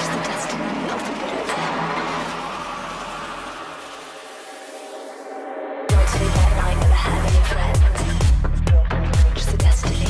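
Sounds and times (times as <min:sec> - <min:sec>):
noise sweep: 0:00.0 - 0:07.7
bass: 0:05.9 - 0:10.0.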